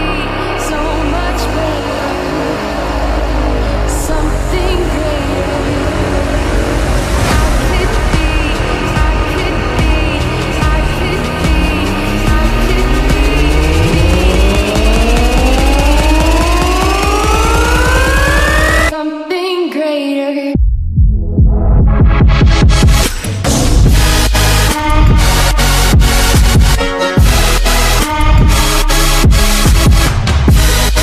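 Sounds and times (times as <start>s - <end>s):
rising synth sweep: 0.0s - 18.9s
electronic dance music: 0.0s - 19.0s, 21.5s - 31.0s.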